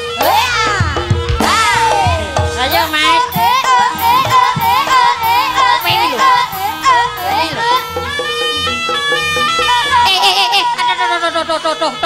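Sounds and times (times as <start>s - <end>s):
steady low drum beat: 0.0s - 10.2s
lead instrument melody: 0.0s - 12.0s.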